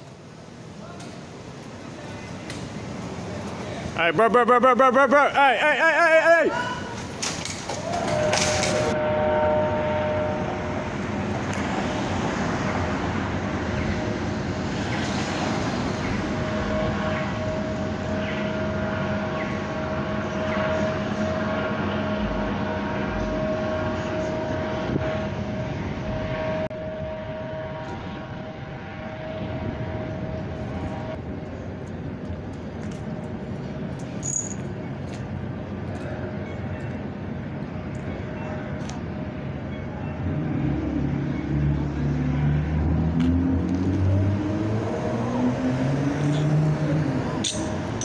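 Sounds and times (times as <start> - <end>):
street noise: 0.0 - 48.0.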